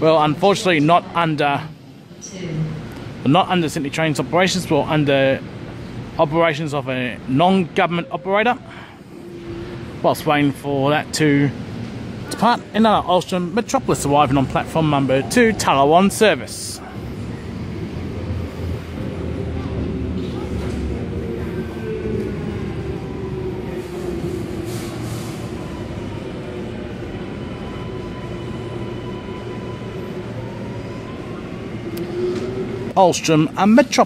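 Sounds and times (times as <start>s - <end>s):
metro train rumbling: 0.0s - 34.0s.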